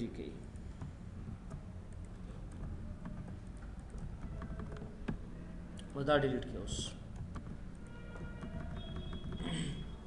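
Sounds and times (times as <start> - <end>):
computer keys and mouse clicking: 0.5 - 6.0, 7.0 - 10.0.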